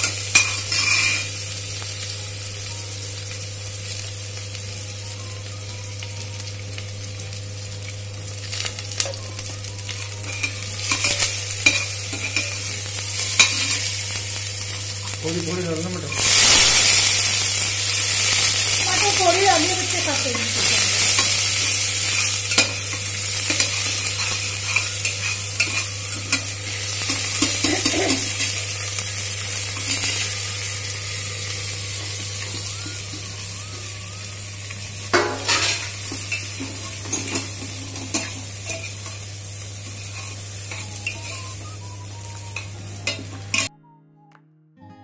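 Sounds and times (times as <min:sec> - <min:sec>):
faint music: 0:00.0 - 0:38.9, 0:39.9 - 0:45.0
food sizzling in oil: 0:00.0 - 0:43.7.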